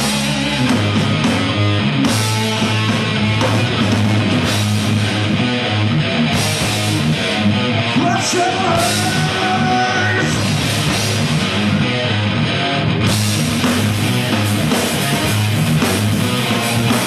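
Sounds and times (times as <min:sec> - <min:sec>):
rock band playing loud: 0:00.0 - 0:17.0.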